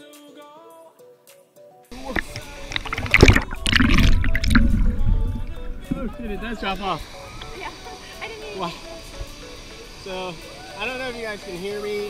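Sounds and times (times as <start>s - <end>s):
quiet background music: 0.0s - 12.0s
muffled water sloshing and splashing: 2.0s - 7.2s.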